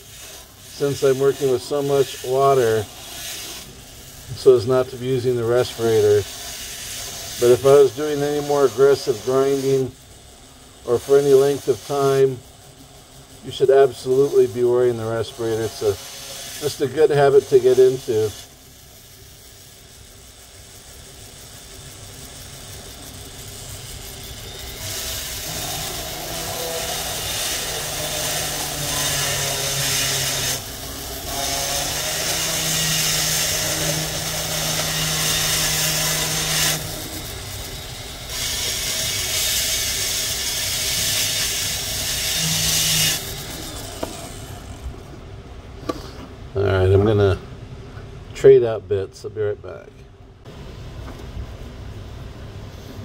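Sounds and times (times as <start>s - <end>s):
rotary bit grinding stone: 0.0s - 10.0s, 13.4s - 44.9s
tool motor hum: 0.0s - 45.1s.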